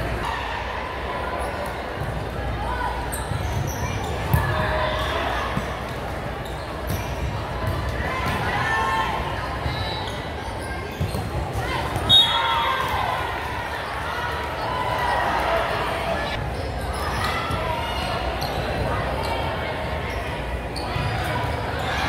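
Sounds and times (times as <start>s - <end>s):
voices echoing in a hall: 0.0s - 22.0s.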